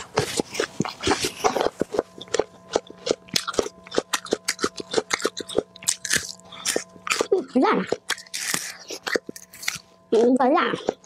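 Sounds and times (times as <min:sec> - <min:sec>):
person chewing crunchy food: 0:00.0 - 0:11.0.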